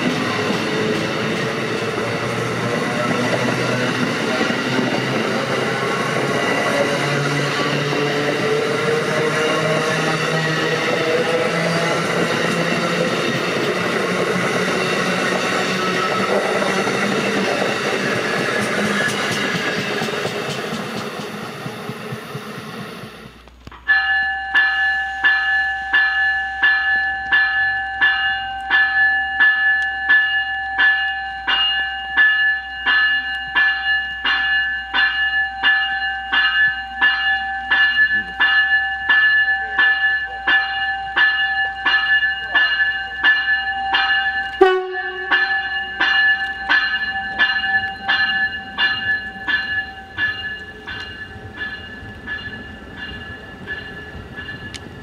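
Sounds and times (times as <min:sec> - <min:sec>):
train bell ringing: 0:00.0 - 0:55.0.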